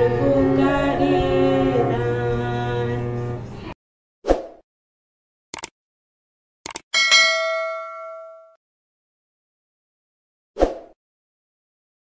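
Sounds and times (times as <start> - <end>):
notification bell ding: 7.0 - 8.6.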